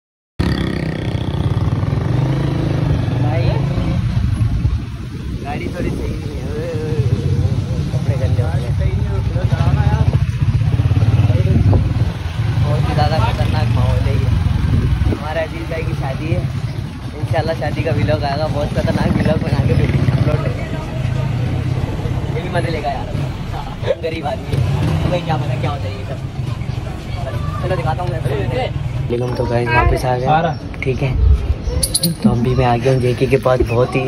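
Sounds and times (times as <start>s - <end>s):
faint voices talking: 2.6s - 34.0s
loud low rumble: 31.0s - 33.7s.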